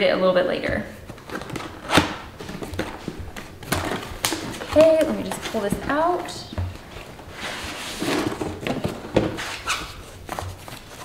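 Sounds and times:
cardboard and foam rustling: 0:00.7 - 0:11.0.

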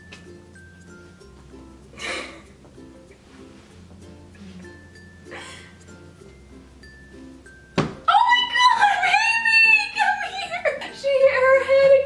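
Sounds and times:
dog head bump thunk: 0:07.8 - 0:08.0.

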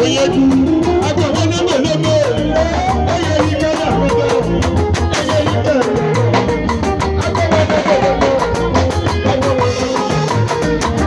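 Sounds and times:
drum kit beat: 0:00.0 - 0:11.0
guitar: 0:00.0 - 0:11.0
live band music: 0:00.0 - 0:11.0.

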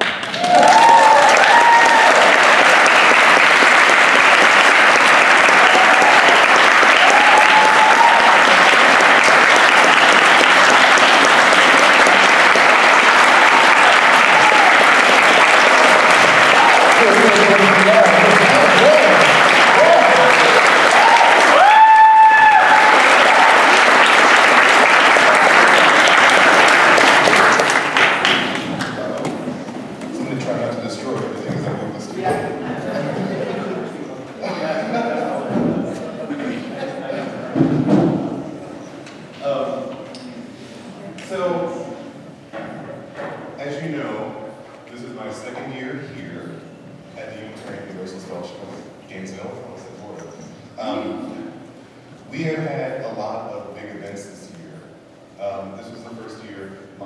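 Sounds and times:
audience applauding: 0:00.0 - 0:30.5
loud held whoop: 0:00.3 - 0:02.4, 0:05.6 - 0:08.6, 0:13.2 - 0:15.0, 0:18.5 - 0:23.9
crowd cheering and calling out: 0:00.3 - 0:02.6, 0:05.3 - 0:09.0, 0:11.7 - 0:25.7.

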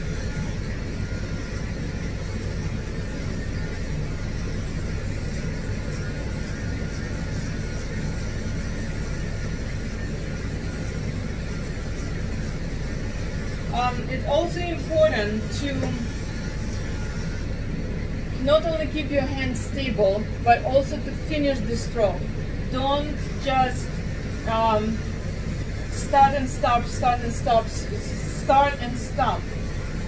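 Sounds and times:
pet clipper motor hum: 0:00.0 - 0:30.0.

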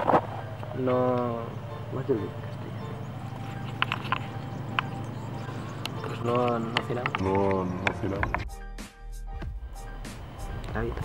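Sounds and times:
stones clacking underfoot: 0:03.3 - 0:05.0, 0:05.8 - 0:08.4.

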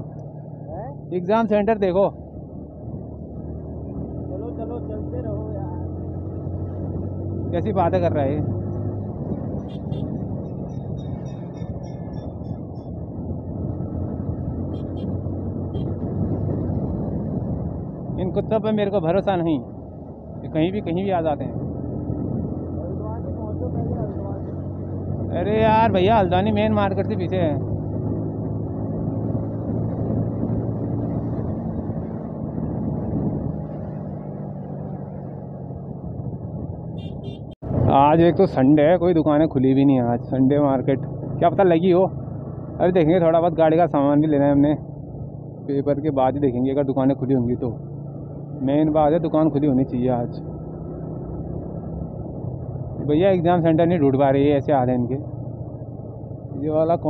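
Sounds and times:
wind and road noise: 0:00.0 - 0:57.0
motorcycle engine running: 0:02.2 - 0:18.8.

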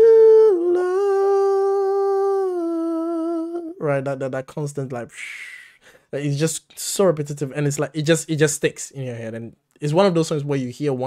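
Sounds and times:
man humming: 0:00.0 - 0:03.9.

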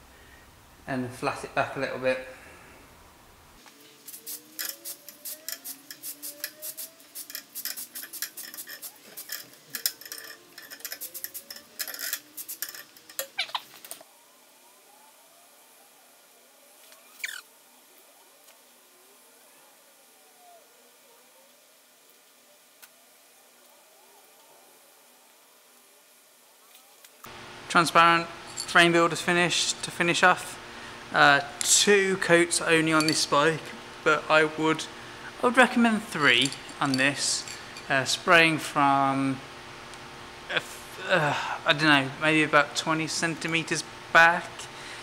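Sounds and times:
short falling squeak: 0:13.3 - 0:13.7, 0:17.0 - 0:17.5.

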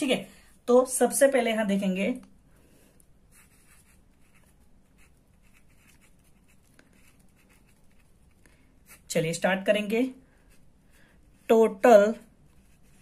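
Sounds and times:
pen scratching on paper: 0:03.3 - 0:09.2, 0:12.5 - 0:13.0.

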